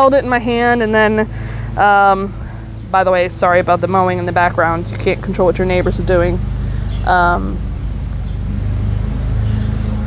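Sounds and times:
lawn mower engine droning: 0.0s - 10.0s.

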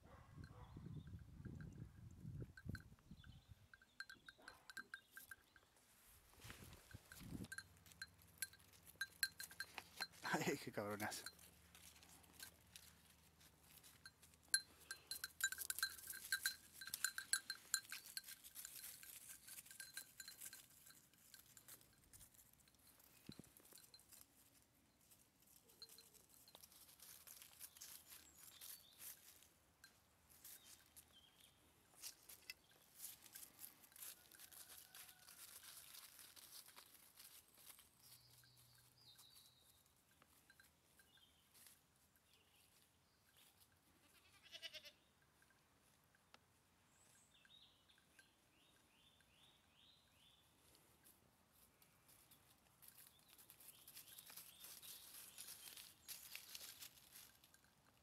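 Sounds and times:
small bell clinking: 0.5s - 5.8s, 6.8s - 42.6s
goat bleating: 44.0s - 45.0s.

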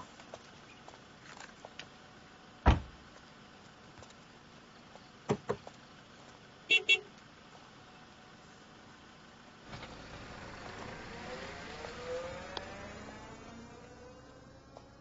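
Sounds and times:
car horn beeps: 6.7s - 7.1s
car engine revving: 9.6s - 15.0s.

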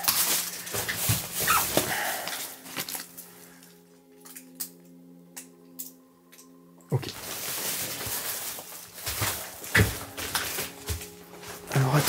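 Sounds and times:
paper rustling: 0.0s - 3.3s, 7.0s - 12.0s
low droning background music: 0.0s - 12.0s.

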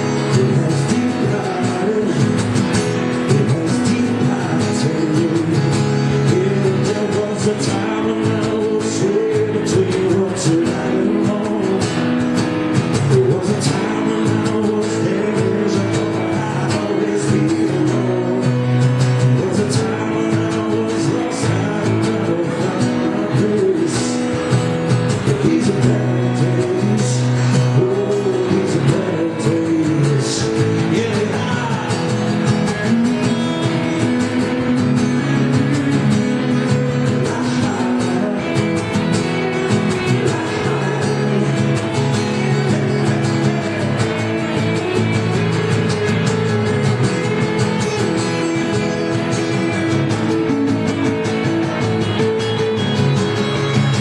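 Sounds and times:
acoustic guitar strumming: 0.0s - 54.0s
live amplified rock band: 0.0s - 54.0s
man singing: 0.0s - 54.0s.

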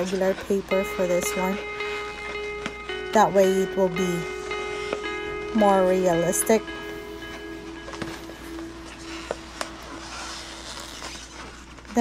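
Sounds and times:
soft background music: 0.0s - 12.0s
stiff paper crinkling: 9.9s - 12.0s.

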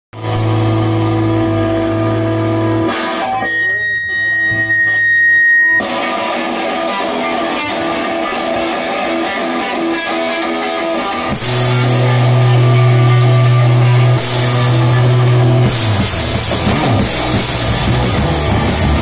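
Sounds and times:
bass guitar low notes: 0.2s - 19.0s
rock band playing: 0.2s - 19.0s
high steady ringing tone: 3.3s - 5.9s.

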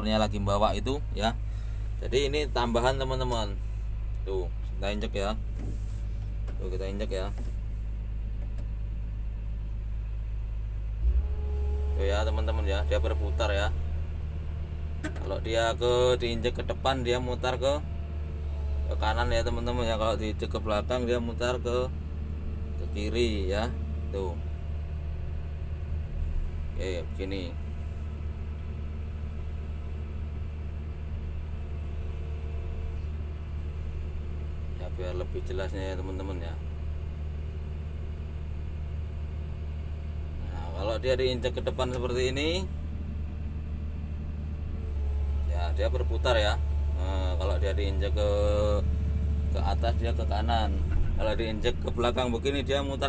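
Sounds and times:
diesel engine running: 0.0s - 53.0s
hydraulic whine: 11.0s - 16.0s.

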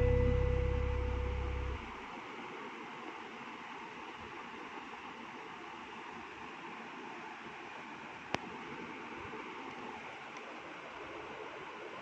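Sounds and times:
background music chord: 0.0s - 1.9s.

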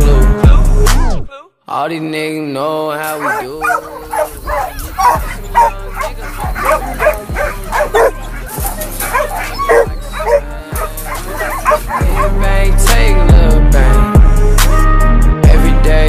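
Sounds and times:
hip-hop music with bass line: 0.0s - 1.3s, 3.2s - 16.0s
dog barking rapidly: 3.1s - 12.4s.

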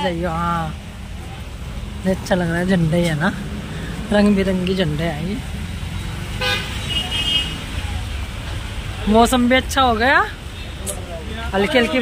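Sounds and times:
road traffic rumble: 0.0s - 12.0s
vehicle horn beep: 6.4s - 7.6s.

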